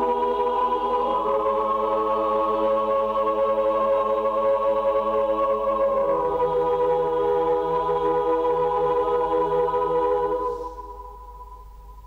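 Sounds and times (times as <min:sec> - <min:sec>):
choir holding sustained chord: 0:00.0 - 0:11.6.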